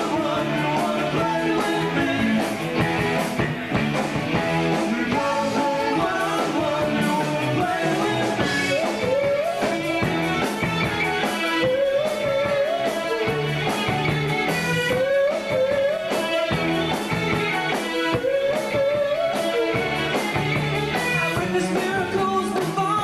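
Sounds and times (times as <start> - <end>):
electric guitar: 0.0 - 23.0
rock band playing: 0.0 - 23.0.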